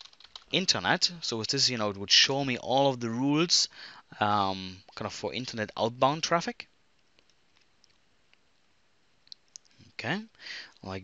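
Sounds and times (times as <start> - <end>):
person speaking: 0.4 - 6.7, 9.3 - 11.0.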